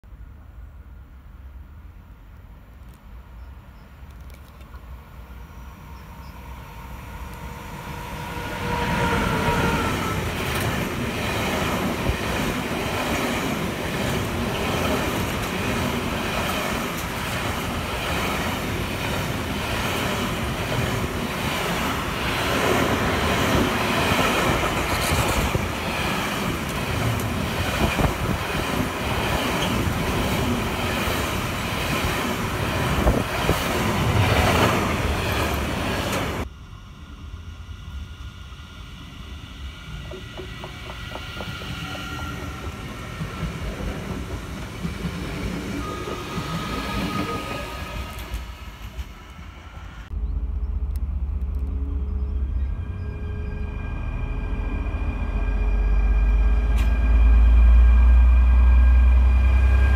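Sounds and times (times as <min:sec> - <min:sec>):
freight train passing: 0:00.1 - 0:59.9
wheels clicking over track: 0:10.4 - 0:36.4.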